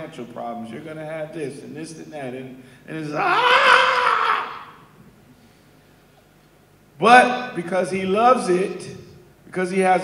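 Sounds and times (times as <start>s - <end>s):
man shouting into a microphone: 2.9s - 4.8s.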